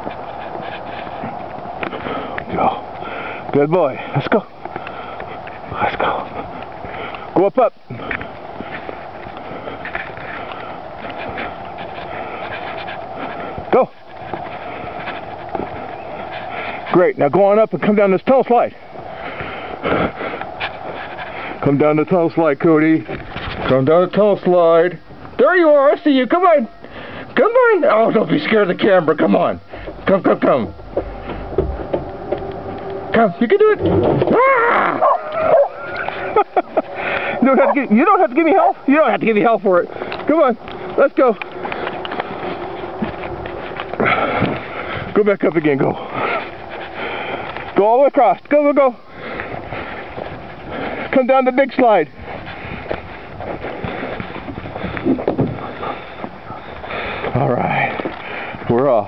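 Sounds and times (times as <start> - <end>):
person panting hard: 0.0 - 17.0, 18.7 - 21.7, 26.8 - 27.4, 29.6 - 30.1, 34.3 - 45.2, 45.8 - 47.8, 49.0 - 51.3, 52.1 - 58.7
dog yipping and whining: 34.3 - 36.0.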